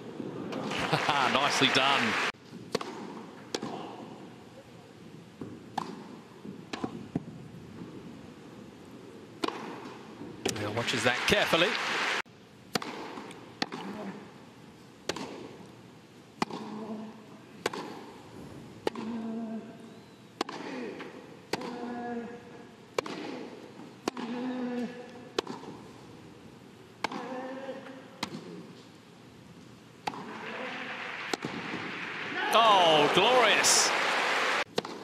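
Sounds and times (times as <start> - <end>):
crowd applause: 0.6 - 2.3, 10.6 - 12.2, 30.3 - 34.7
tennis racquets hitting ball: 2.6 - 3.8, 5.4 - 7.3, 9.4 - 10.6, 12.7 - 14.1, 15.0 - 15.6, 16.4 - 16.9, 17.6 - 18.2, 18.8 - 19.2, 20.4 - 21.9, 22.9 - 24.4, 25.3 - 25.8, 27.0 - 27.3, 28.2 - 28.6, 30.0 - 32.0, 34.7 - 35.0.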